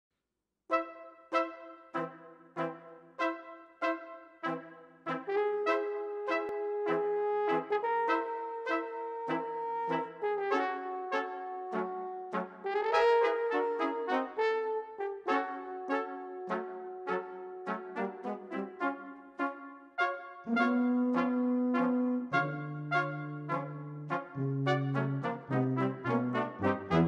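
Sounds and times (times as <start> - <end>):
brass quintet playing: 0.7 - 27.0.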